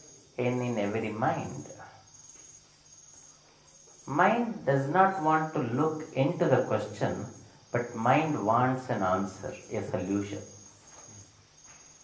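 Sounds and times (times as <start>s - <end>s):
high-pitched insect chirring: 0.0s - 12.0s.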